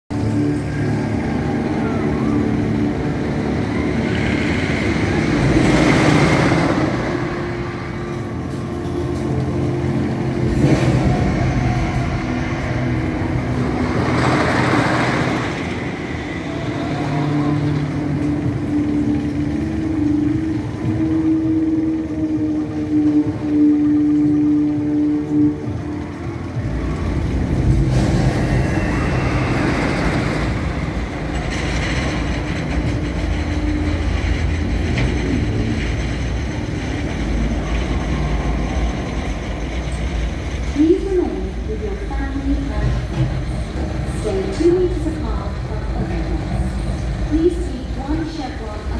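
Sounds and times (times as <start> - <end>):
roller coaster rumbling on wooden track: 0.1 - 48.9
steady low drone: 0.1 - 48.9.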